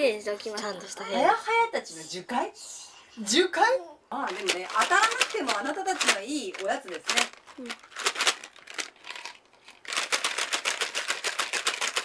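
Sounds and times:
candy rattling in cardboard box: 4.3 - 12.0.

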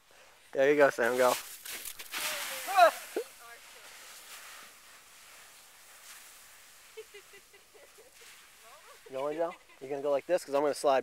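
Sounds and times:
boots sliding over snow: 1.0 - 9.9.

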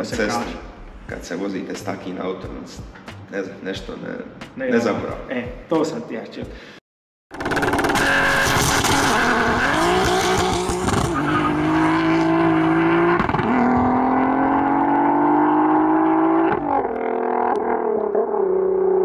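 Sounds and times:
car engine accelerating hard: 7.4 - 19.0.

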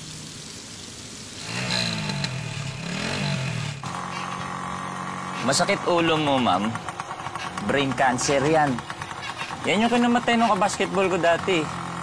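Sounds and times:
small motorcycle engine revving: 1.4 - 12.0.

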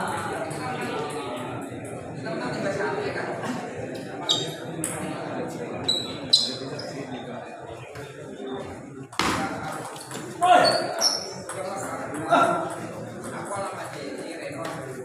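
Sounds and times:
people chattering in a hall: 0.0 - 15.0
table tennis ball bouncing: 11.0 - 14.0.

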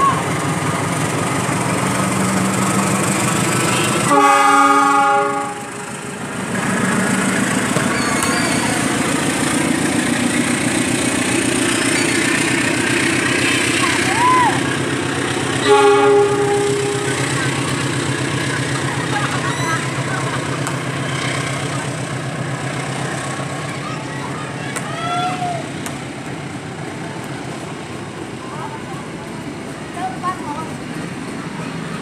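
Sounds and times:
train wheels rumbling on rails: 0.0 - 32.0.

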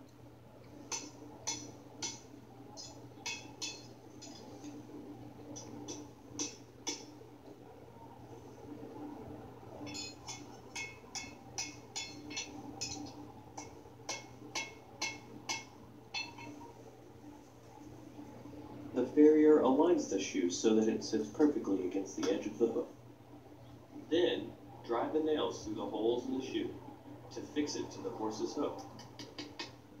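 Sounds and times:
hammer clinking on anvil: 2.8 - 4.5, 9.9 - 16.6.

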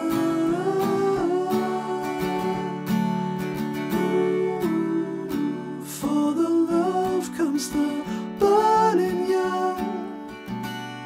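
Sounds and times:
acoustic guitars playing: 0.0 - 11.0.

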